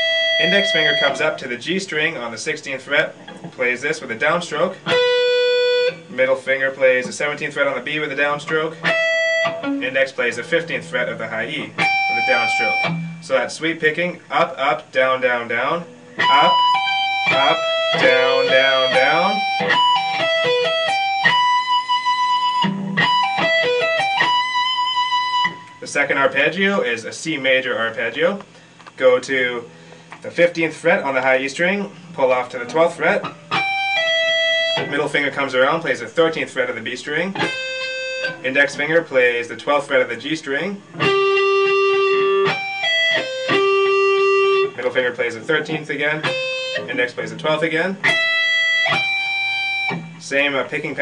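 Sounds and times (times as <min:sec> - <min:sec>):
electric guitar arpeggio: 0:00.0 - 0:01.4, 0:04.8 - 0:06.1, 0:08.1 - 0:13.2, 0:15.9 - 0:25.8, 0:33.2 - 0:34.9, 0:37.4 - 0:38.9, 0:40.9 - 0:44.8, 0:45.6 - 0:50.7.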